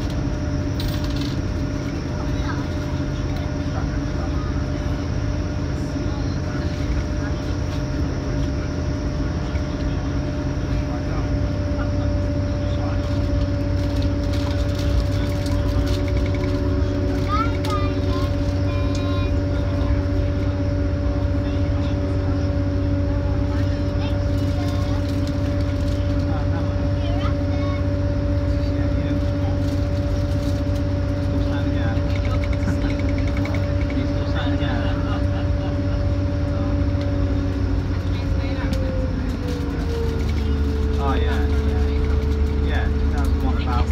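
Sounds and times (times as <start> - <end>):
faint voices: 0.0 - 43.9
traction equipment hum: 0.0 - 43.9
train wheels rumbling on rail: 0.0 - 43.9.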